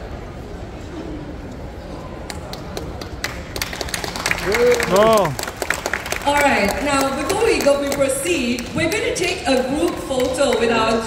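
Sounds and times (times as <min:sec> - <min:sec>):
audience applause: 0:02.3 - 0:08.7.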